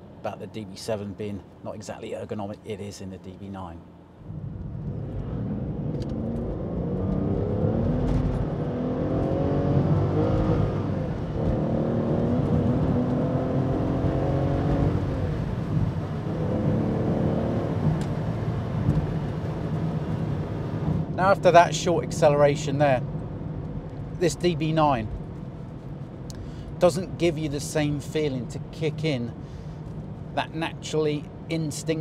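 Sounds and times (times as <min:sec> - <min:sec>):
car engine accelerating: 0:04.3 - 0:21.1.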